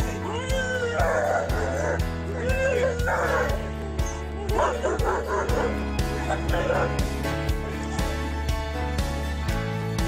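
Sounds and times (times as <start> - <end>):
background music with steady beat: 0.0 - 10.0
dog whining: 0.1 - 7.0.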